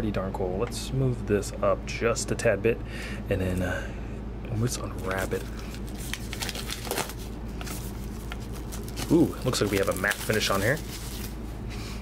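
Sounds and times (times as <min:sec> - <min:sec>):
plastic shrink wrap crinkling: 0:04.9 - 0:11.4.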